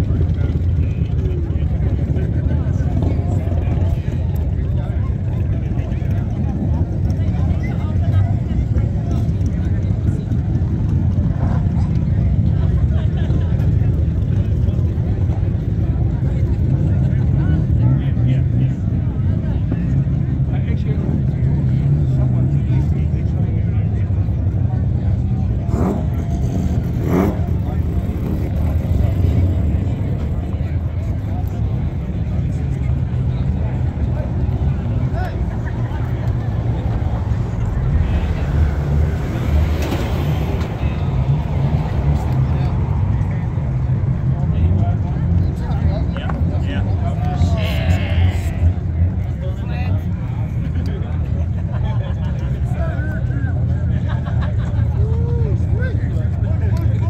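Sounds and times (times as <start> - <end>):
crowd talking: 0.0 - 57.0.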